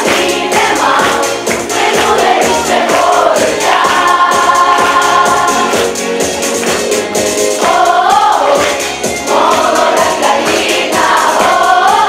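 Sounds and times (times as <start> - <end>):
children's choir singing: 0.0 - 12.0
musical accompaniment: 0.0 - 12.0.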